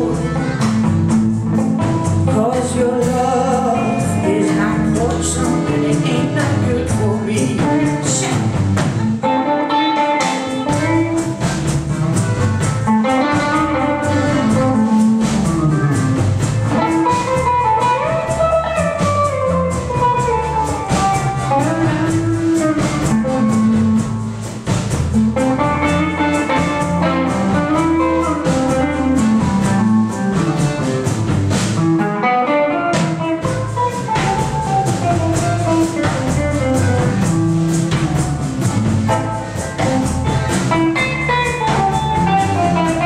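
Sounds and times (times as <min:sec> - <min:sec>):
bass guitar: 0:00.0 - 0:43.0
drum kit beat: 0:00.0 - 0:43.0
electric guitar lead lines: 0:00.0 - 0:43.0.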